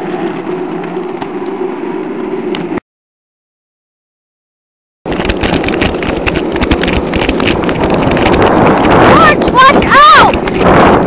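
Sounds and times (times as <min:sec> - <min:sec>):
cart wheels rolling on asphalt: 0:00.0 - 0:02.8, 0:05.1 - 0:11.0
wind on microphone: 0:05.1 - 0:11.0
high yells: 0:09.1 - 0:10.4.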